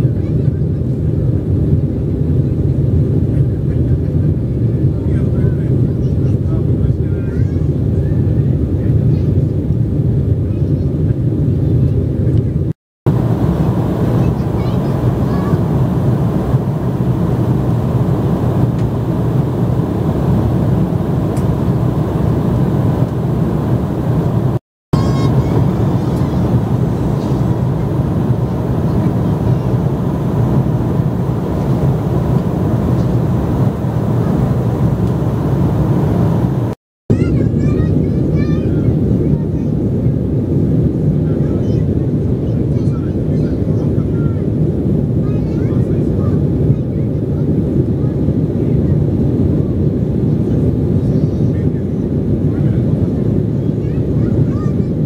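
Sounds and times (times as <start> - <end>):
jet airliner cabin drone: 7.7 - 36.8, 39.0 - 55.0.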